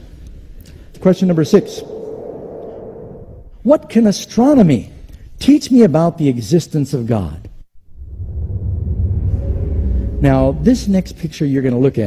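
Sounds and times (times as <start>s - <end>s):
deep rumbling swell: 0.9s - 3.7s, 7.9s - 11.8s.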